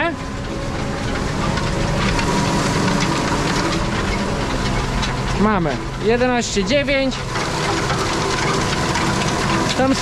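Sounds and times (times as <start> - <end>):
harrow rattling: 0.0 - 10.0
tractor engine running under load: 0.0 - 10.0.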